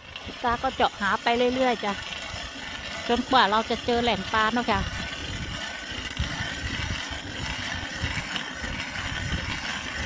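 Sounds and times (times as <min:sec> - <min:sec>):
ice auger grinding through ice: 0:00.0 - 0:10.0.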